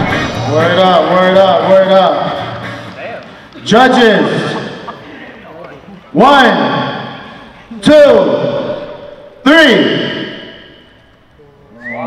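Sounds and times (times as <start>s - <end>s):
crowd voices: 0.0s - 12.0s
echo of man shouting through pa: 7.8s - 10.6s.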